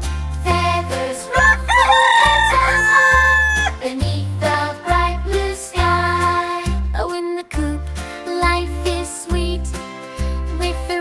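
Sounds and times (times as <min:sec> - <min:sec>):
children's song backing music: 0:00.0 - 0:11.0
rooster crowing: 0:01.3 - 0:03.8.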